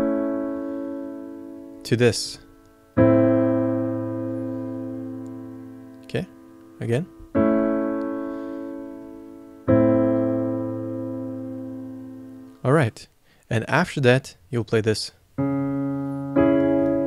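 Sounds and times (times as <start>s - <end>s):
piano chord ringing: 0.0s - 12.7s, 15.4s - 17.0s.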